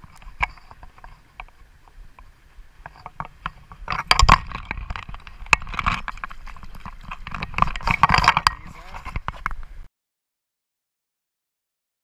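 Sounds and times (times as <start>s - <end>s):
clicks and knocks: 2.8s - 9.6s.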